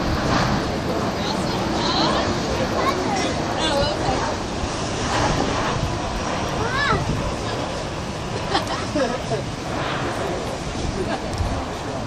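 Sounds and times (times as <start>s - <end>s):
wind rumble on microphone: 0.0s - 12.0s
people talking: 0.6s - 4.5s, 6.5s - 12.0s.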